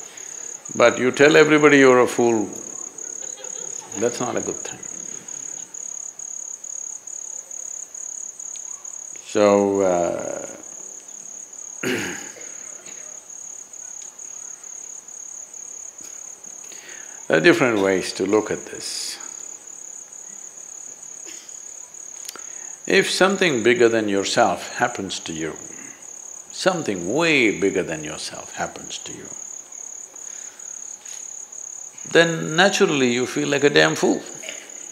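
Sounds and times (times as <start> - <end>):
crickets chirping: 0.0 - 34.9
person speaking: 0.7 - 3.1, 3.8 - 5.6
soft breath: 16.6 - 17.3.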